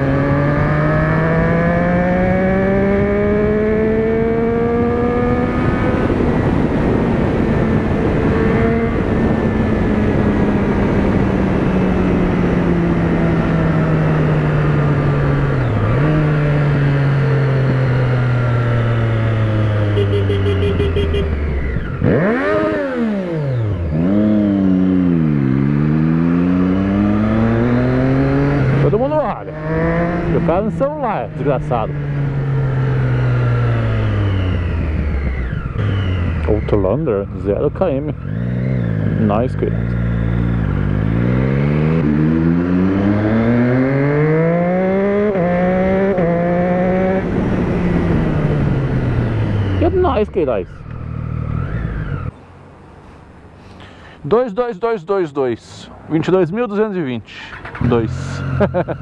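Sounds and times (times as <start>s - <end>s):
motorcycle engine revving: 0.0s - 52.4s, 57.3s - 59.0s.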